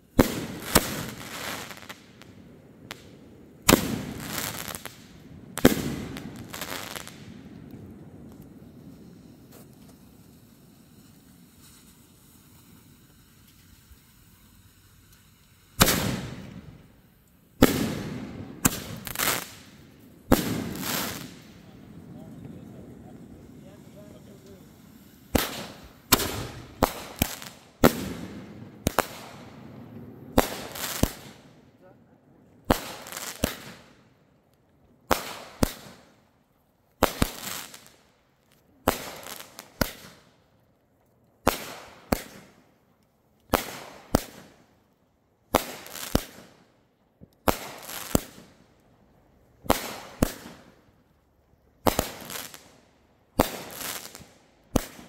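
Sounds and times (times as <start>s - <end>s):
fireworks bangs: 0.0s - 12.3s, 15.8s - 17.0s, 17.6s - 31.6s, 32.6s - 34.0s, 35.1s - 36.1s, 37.0s - 38.0s, 38.8s - 40.3s, 41.4s - 42.6s, 43.5s - 44.6s, 45.5s - 46.7s, 47.3s - 48.6s, 49.6s - 50.8s, 51.8s - 52.8s, 53.4s - 55.0s.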